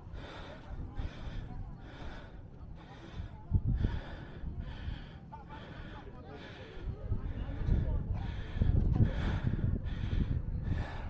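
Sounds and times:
wind rumbling on microphone: 0:00.0 - 0:05.1, 0:06.7 - 0:11.0
hard rhythmic breathing: 0:00.0 - 0:11.0.

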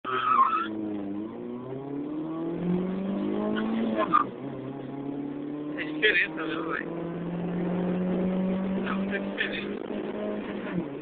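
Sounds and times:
tyre squeal: 0:00.1 - 0:00.8, 0:03.6 - 0:04.3
car engine accelerating: 0:00.1 - 0:11.0.

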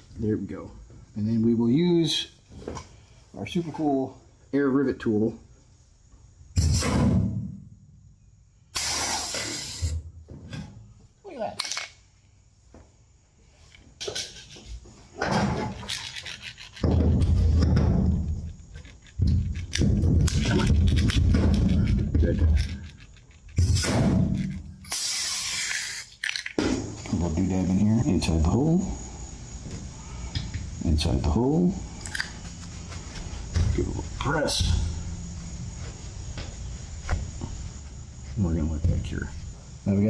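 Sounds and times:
pneumatic rivet gun hissing: 0:06.6 - 0:07.2, 0:08.7 - 0:10.0, 0:23.6 - 0:26.6.

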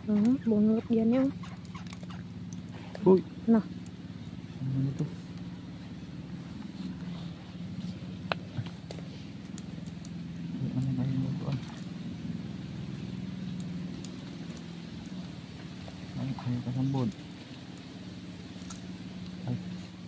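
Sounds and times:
engine drone: 0:00.0 - 0:20.0.

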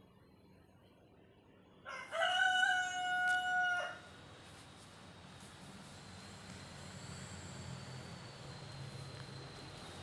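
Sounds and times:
rooster crowing: 0:01.8 - 0:04.2.

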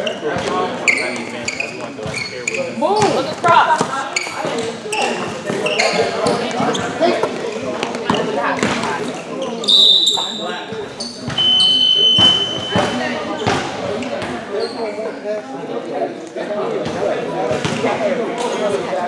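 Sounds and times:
voices of players and spectators: 0:00.0 - 0:19.0
referee whistle blasts: 0:09.6 - 0:10.4, 0:11.4 - 0:13.1.

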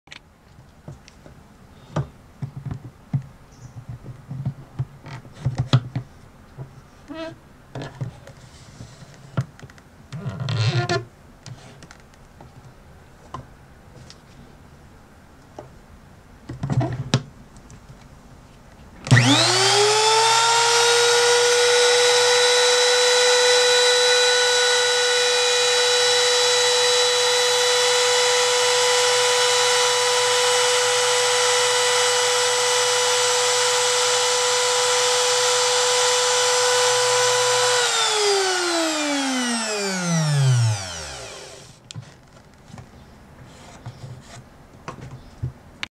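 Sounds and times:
router motor whine: 0:19.1 - 0:41.8.

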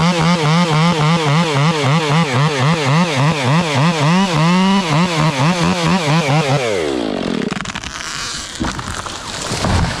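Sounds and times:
chainsaw at high revs: 0:00.0 - 0:09.6
tree limbs snapping and crackling: 0:07.3 - 0:10.0.

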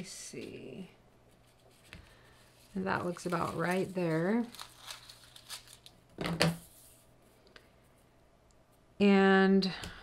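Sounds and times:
foil crackling: 0:02.7 - 0:05.9
foil crinkle: 0:02.7 - 0:06.0.

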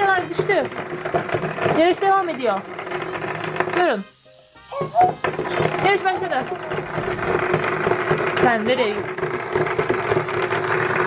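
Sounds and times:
clicking and rattling: 0:00.0 - 0:04.0, 0:05.1 - 0:11.0
toy motors whirring: 0:00.0 - 0:11.0.

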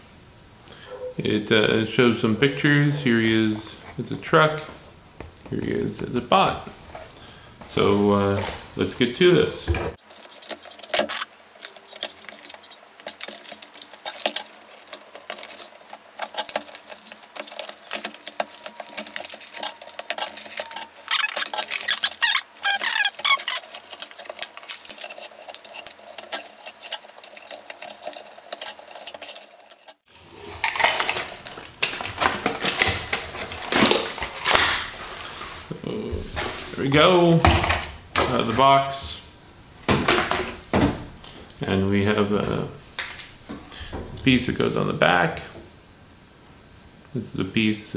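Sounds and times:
cardboard and plastic toy handling: 0:10.0 - 0:36.8.

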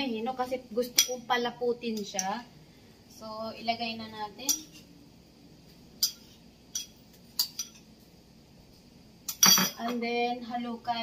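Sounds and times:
spoon clinking against bowl: 0:04.5 - 0:04.8, 0:06.0 - 0:07.9, 0:09.3 - 0:09.9.

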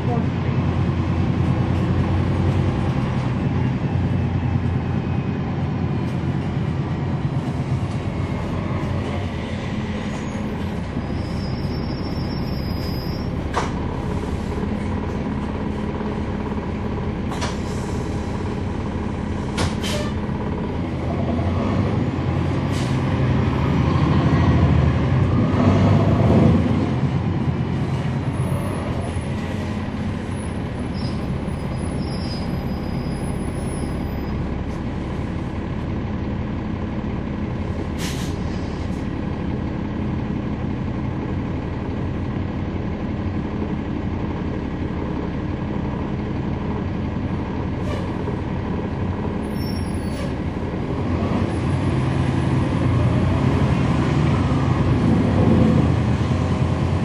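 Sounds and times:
bus diesel engine running: 0:00.0 - 0:57.0
road noise: 0:00.0 - 0:57.0.

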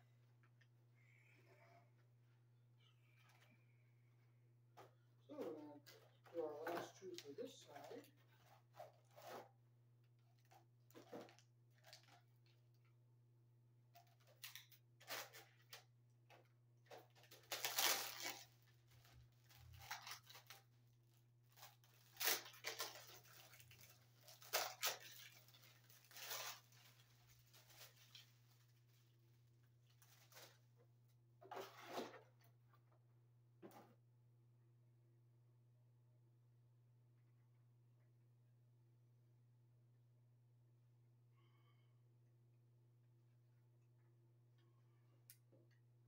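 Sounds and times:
faint low hum: 0:00.0 - 0:46.0
packaging rustling and tearing: 0:17.2 - 0:20.7, 0:21.5 - 0:28.7.

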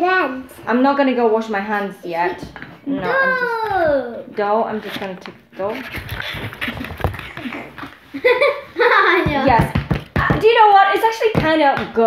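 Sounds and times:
dough thumping on wooden board: 0:09.2 - 0:12.0.

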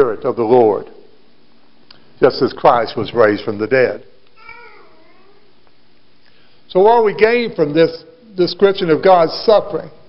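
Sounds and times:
faint high-pitched cry: 0:04.4 - 0:05.5.

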